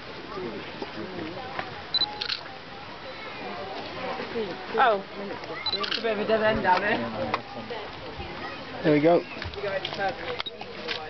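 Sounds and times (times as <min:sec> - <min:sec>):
camera focus beep: 0:02.0 - 0:02.4, 0:05.6 - 0:06.0
camera shutter clicks: 0:02.0 - 0:02.4, 0:05.7 - 0:06.1.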